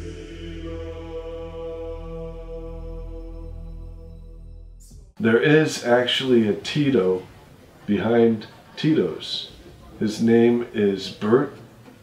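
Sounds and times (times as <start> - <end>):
deep low hum: 0.0 - 5.2
sustained droning chord: 0.0 - 5.2.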